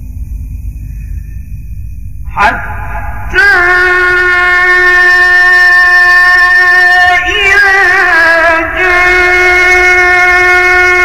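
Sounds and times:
man reciting a long held note: 2.2 - 11.0.

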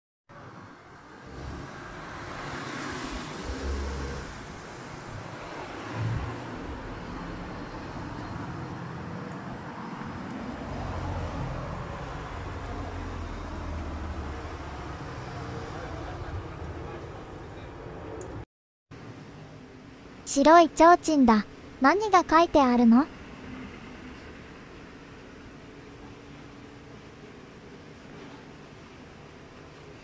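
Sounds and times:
road traffic hum: 0.3 - 18.4, 23.0 - 30.0
car passing: 1.0 - 18.1.

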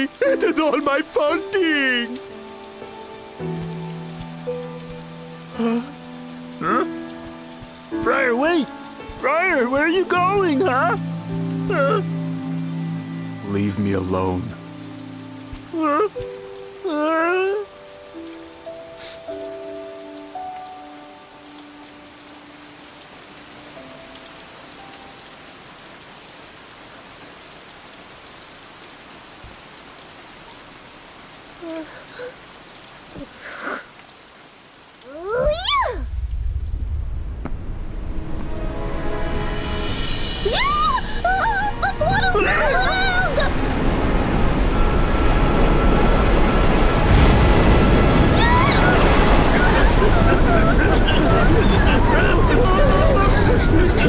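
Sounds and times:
sustained music notes: 0.0 - 25.7, 36.1 - 54.0
steady rain: 0.0 - 54.0
wordless wavering cries: 40.4 - 44.8, 45.6 - 54.0.

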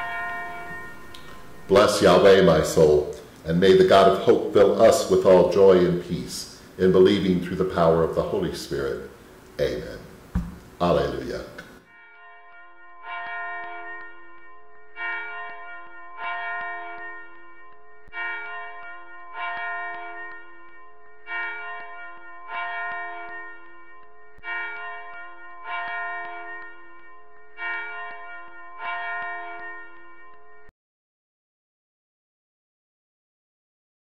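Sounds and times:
church bell ringing: 0.0 - 10.0, 10.8 - 30.7.

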